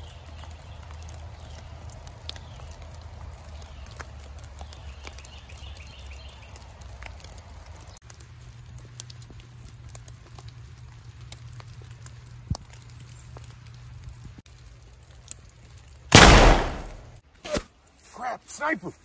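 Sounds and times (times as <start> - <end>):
rifle shot: 16.1 - 17.2
short sharp crack: 16.1 - 17.7.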